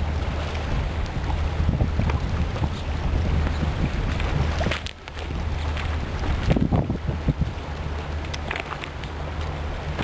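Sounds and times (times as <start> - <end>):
low steady rumble: 0.0 - 10.0
wind buffeting microphone: 0.0 - 10.0.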